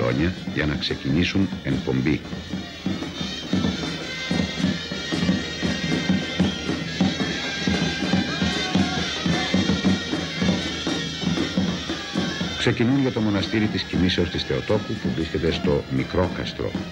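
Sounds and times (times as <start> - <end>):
bass drum beat: 0.0 - 15.1
shrill reed pipes playing melody: 0.0 - 16.9.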